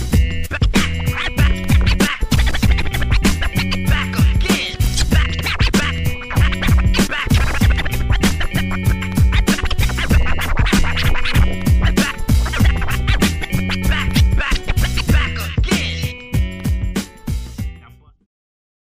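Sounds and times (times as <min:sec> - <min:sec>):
turntable scratching: 0:00.0 - 0:17.6
hip-hop beat with drums and bass: 0:00.0 - 0:18.1.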